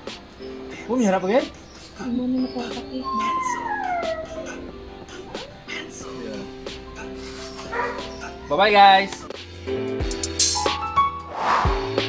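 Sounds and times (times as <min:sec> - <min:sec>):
background music: 0:00.0 - 0:12.0
dog whining: 0:02.5 - 0:05.6, 0:07.6 - 0:08.5.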